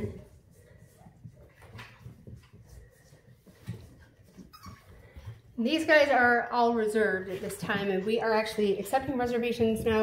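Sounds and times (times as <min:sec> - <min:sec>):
puppy whimper: 0:04.4 - 0:05.2.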